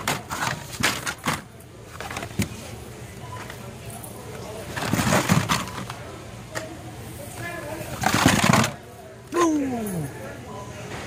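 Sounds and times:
plastic cards rustling and clacking: 0.0 - 2.7, 4.6 - 6.0, 7.9 - 8.8.

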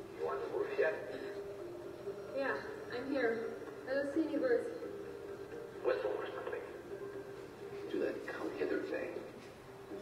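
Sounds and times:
woman speaking on television: 2.3 - 4.9.

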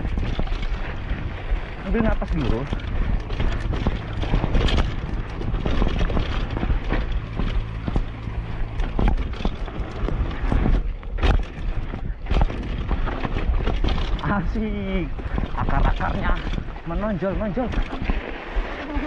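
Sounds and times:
bike rattling over rough ground: 0.0 - 19.0
wind rumble on microphone: 0.0 - 19.0.

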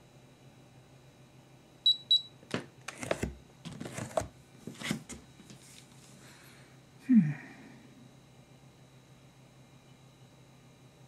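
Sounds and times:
scale beeps: 1.9 - 2.3.

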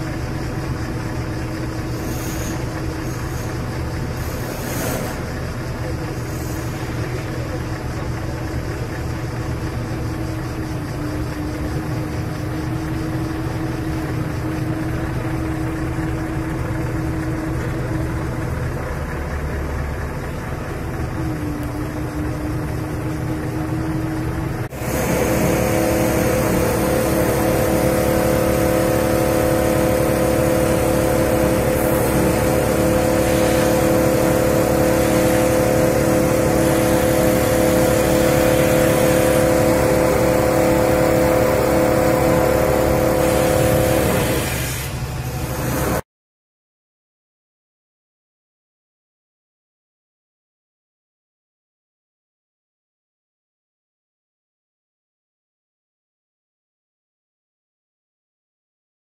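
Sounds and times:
diesel engine running: 0.0 - 46.0
hydraulic pump hum: 0.0 - 46.0.

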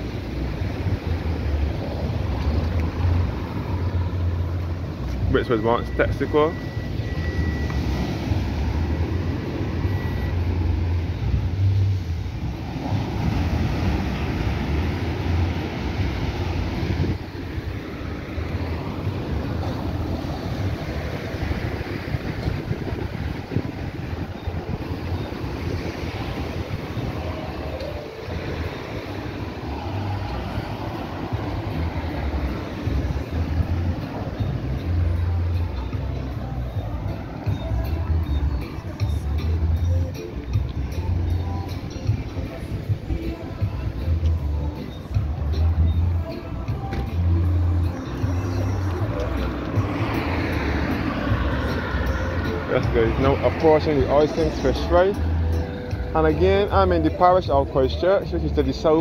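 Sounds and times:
road traffic rushing: 0.0 - 59.0
wind buffeting microphone: 10.6 - 34.8.

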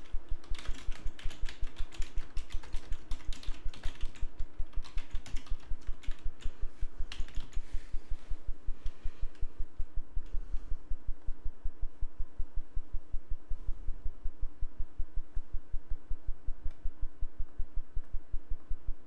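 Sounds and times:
typing on computer keyboard: 0.0 - 7.6.

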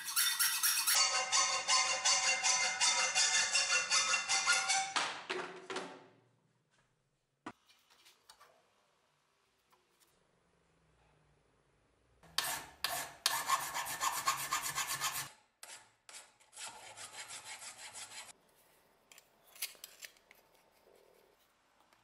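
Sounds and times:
hand file rasping on metal: 0.0 - 4.9, 12.4 - 18.3.

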